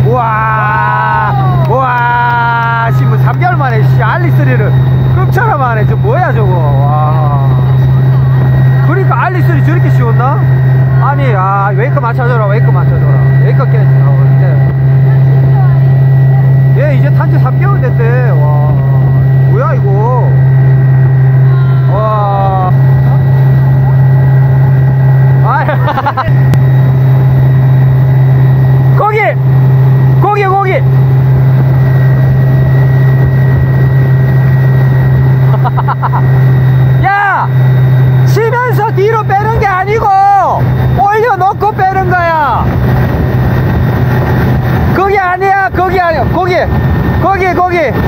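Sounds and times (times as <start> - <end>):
boat engine drone: 0.0 - 48.0.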